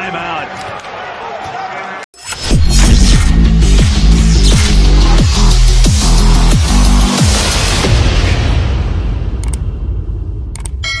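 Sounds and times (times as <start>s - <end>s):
electronic music deep bass: 2.4s - 9.9s.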